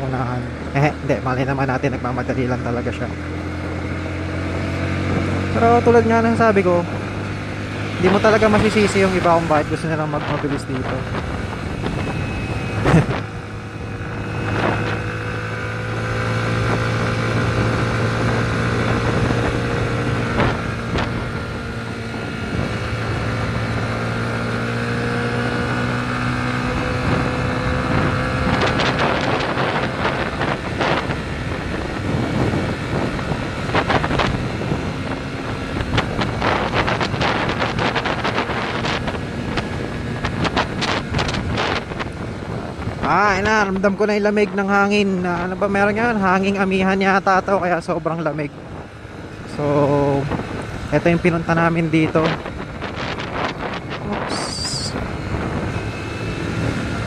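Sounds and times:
motorcycle engine cruising: 0:00.0 - 0:57.0
wind on microphone: 0:00.0 - 0:57.0.

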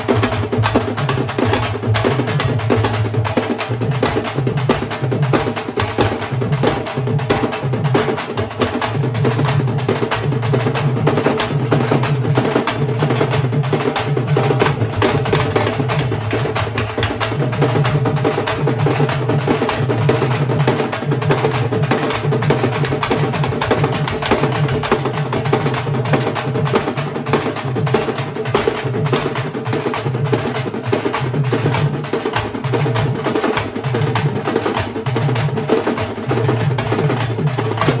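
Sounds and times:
drum ensemble playing fast rhythm: 0:00.0 - 0:38.0.

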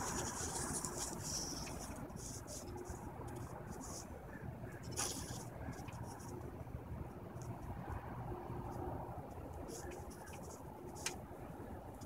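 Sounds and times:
soft rustles and clicks: 0:00.0 - 0:06.5, 0:07.4 - 0:11.3
outdoor background rumble: 0:00.0 - 0:12.0.

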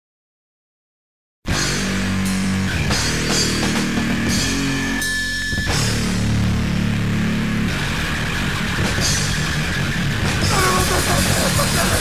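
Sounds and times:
distorted guitar and bass band: 0:01.5 - 0:12.0.

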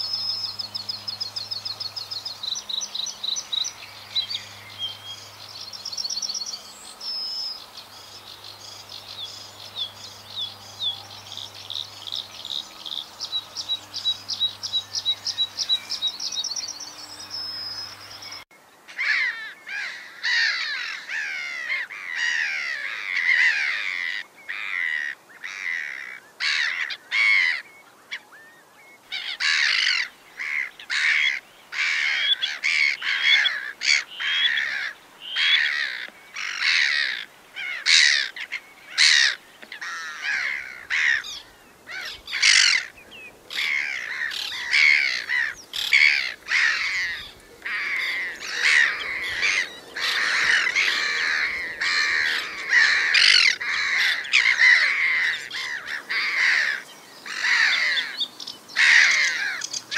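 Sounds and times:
flock of birds calling: 0:00.0 - 0:59.9.

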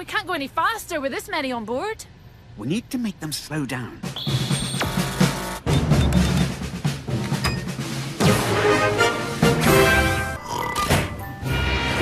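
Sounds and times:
heavy drums: 0:04.0 - 0:09.8
dramatic cartoon score: 0:04.0 - 0:12.0.

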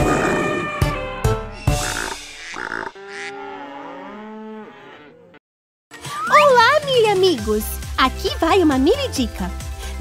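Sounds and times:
cattle mooing: 0:01.8 - 0:05.4.

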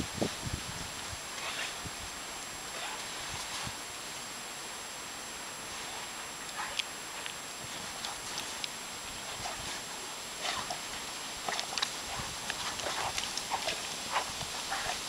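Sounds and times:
steady background hiss: 0:00.0 - 0:15.0
paws crunching in snow: 0:02.7 - 0:04.2, 0:05.6 - 0:15.0.

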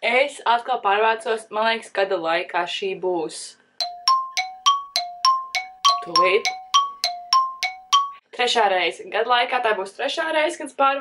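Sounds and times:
two-note chime ringing: 0:03.8 - 0:08.2.

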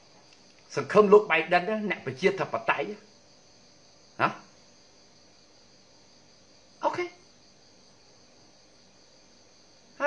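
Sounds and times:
crickets trilling: 0:00.0 - 0:10.0
man speaking: 0:00.7 - 0:03.1, 0:04.2 - 0:04.5, 0:06.8 - 0:07.2.

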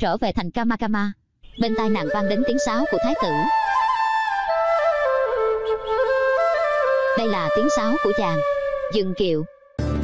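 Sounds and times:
bamboo flute melody: 0:01.7 - 0:09.8.

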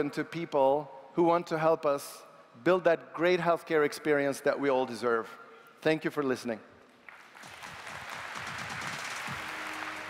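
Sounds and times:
audience applauding: 0:07.1 - 0:10.0
music: 0:07.4 - 0:10.0.

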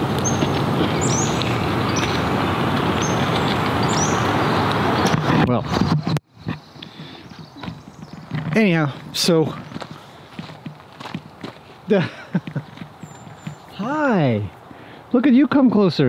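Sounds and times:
loud steady rushing noise: 0:00.0 - 0:06.1
bird high falling calls: 0:00.0 - 0:10.4, 0:12.3 - 0:14.9.

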